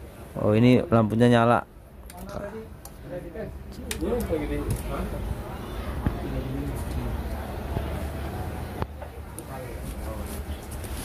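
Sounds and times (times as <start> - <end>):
faint voices talking: 2.0 - 11.0.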